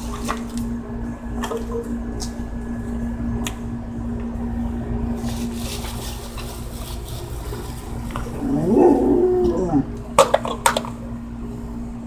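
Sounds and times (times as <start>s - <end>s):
steady hum: 0.0s - 12.0s
dog howling call: 8.2s - 10.0s.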